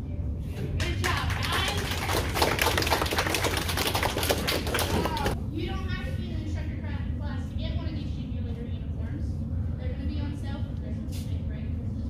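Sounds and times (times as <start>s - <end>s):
low steady hum: 0.0s - 12.0s
small group clapping: 0.7s - 5.4s.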